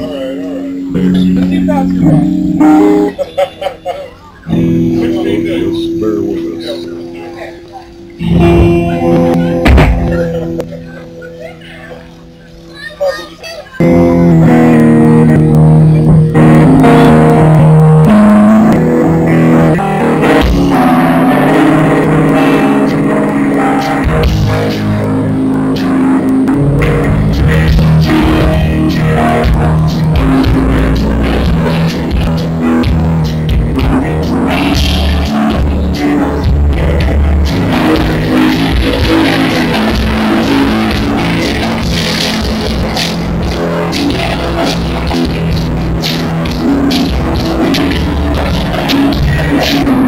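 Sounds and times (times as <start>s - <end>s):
live band music: 0.0s - 50.0s
low thump: 9.6s - 10.1s.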